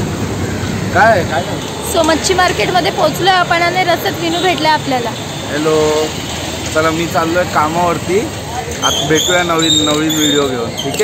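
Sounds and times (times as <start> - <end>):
street traffic hum: 0.0 - 11.0
woman talking: 1.8 - 5.2.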